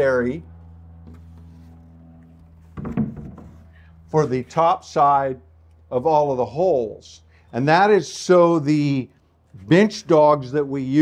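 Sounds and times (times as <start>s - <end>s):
low room hum: 0.0s - 11.0s
plywood panels knocking: 2.7s - 3.6s.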